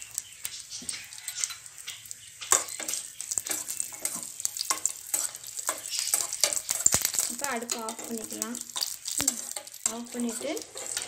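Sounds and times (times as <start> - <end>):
nuts sizzling in a pan: 0.0 - 11.0
metal spoon scraping pan: 0.8 - 11.0.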